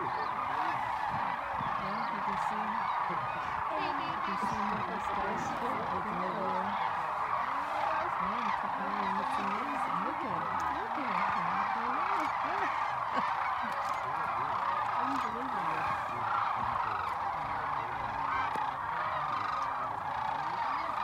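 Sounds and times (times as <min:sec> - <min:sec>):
flock of cranes calling: 0:00.0 - 0:21.0.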